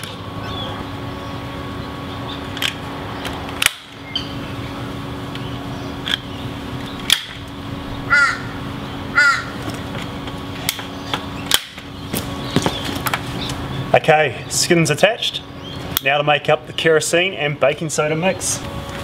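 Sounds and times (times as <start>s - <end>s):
steady low hum: 0.0s - 19.0s
crow cawing: 8.0s - 9.7s.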